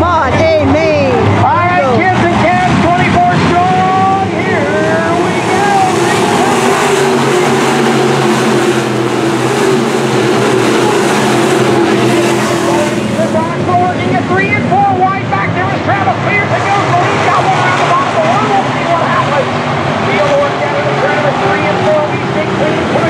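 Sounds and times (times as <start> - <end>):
race car engines passing: 0.0 - 23.0.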